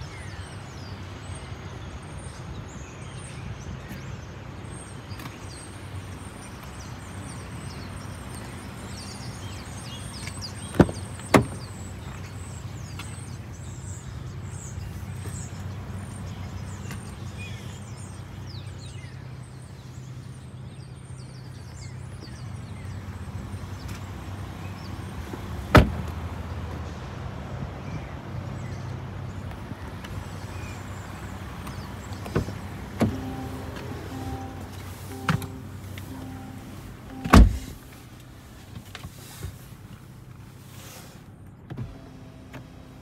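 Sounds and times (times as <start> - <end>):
car door latch clunk: 10.7 - 11.7, 25.3 - 26.2, 31.6 - 38.0
pulsing warning chime: 33.0 - 38.1
car door knock: 37.2 - 37.8.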